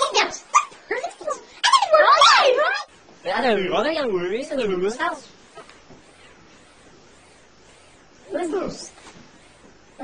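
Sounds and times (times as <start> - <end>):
distorted high yelping voice: 0.0 - 2.9.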